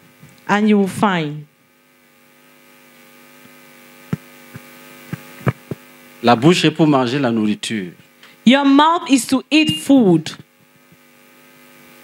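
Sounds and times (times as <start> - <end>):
electrical hum from speakers: 0.0 - 12.0.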